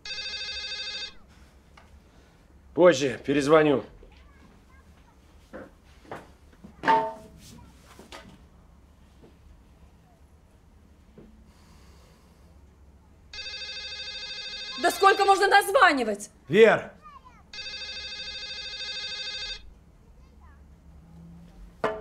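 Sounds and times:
phone ringtone: 0.0s - 1.2s, 13.3s - 15.7s, 17.5s - 19.8s
person speaking: 14.8s - 16.9s.

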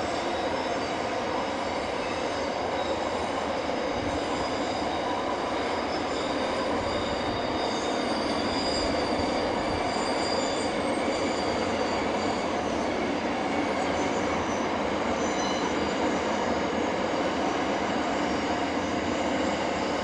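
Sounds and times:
high-pitched wheel squeal: 0.0s - 16.6s
train wheels rumbling on rail: 0.0s - 20.0s.

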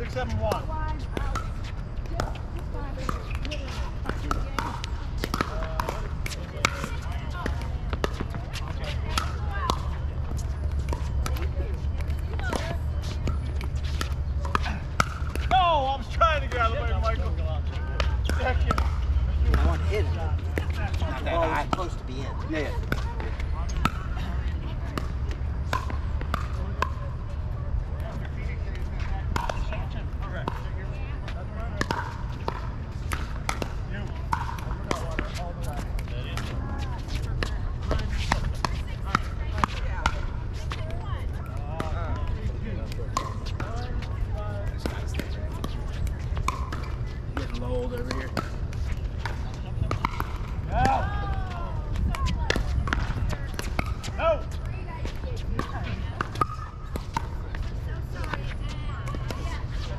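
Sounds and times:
paddles hitting plastic ball: 3.1s - 12.9s, 13.5s - 17.4s, 25.0s - 27.0s, 31.8s - 44.1s, 44.7s - 54.3s.

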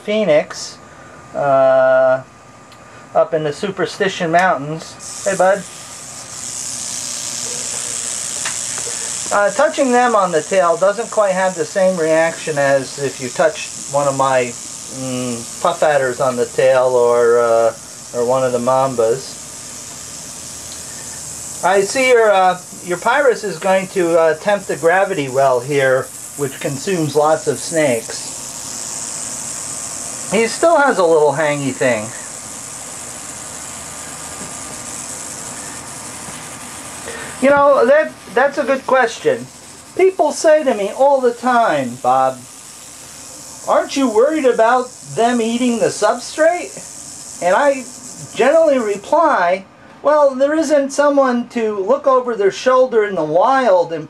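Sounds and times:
rattlesnake rattling: 5.0s - 51.1s.

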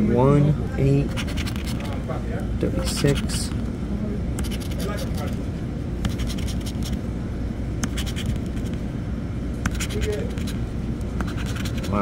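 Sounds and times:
pencil scraping a ticket: 1.1s - 2.0s, 2.8s - 3.5s, 4.4s - 5.4s, 6.0s - 7.0s, 7.8s - 8.8s, 9.7s - 10.6s, 11.2s - 12.0s.

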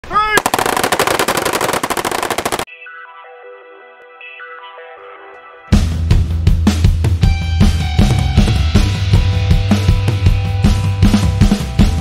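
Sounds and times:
machine guns firing: 0.4s - 2.7s.

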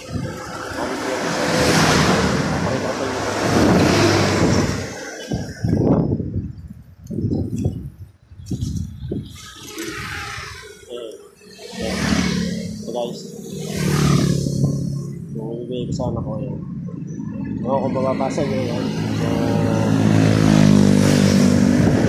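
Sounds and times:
loud rushing noise: 0.0s - 6.3s, 9.1s - 15.4s, 18.2s - 22.0s.

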